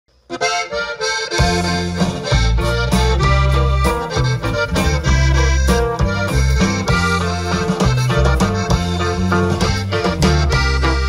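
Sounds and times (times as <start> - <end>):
live band music with accordion: 0.2 - 11.0
heavy bass line: 0.4 - 11.0.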